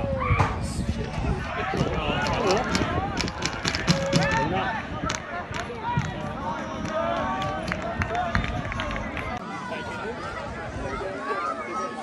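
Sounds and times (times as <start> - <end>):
people shouting and calling: 0.0 - 12.0
sharp knocks: 2.2 - 4.5.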